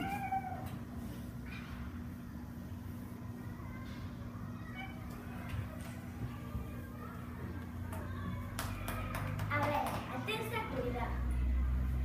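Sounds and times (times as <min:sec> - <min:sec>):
children's voices: 0:01.5 - 0:12.0
child speaking: 0:03.3 - 0:11.6.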